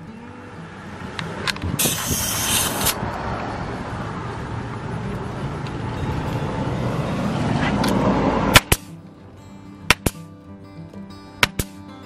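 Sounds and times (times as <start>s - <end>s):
soft background music: 0.0s - 1.6s, 4.9s - 12.0s
nail gun snaps: 8.5s - 8.9s, 9.9s - 10.2s, 11.4s - 11.8s.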